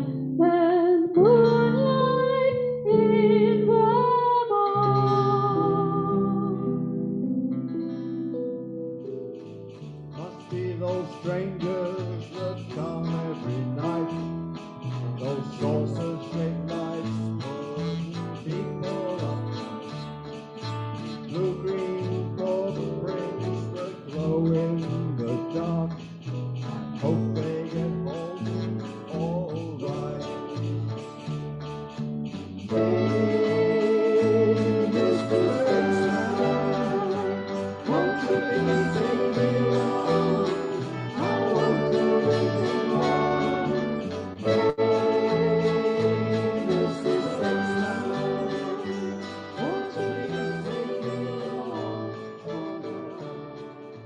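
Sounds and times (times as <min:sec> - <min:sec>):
guitars: 0:00.0 - 0:54.0
live band playing: 0:08.4 - 0:24.8, 0:29.8 - 0:54.0.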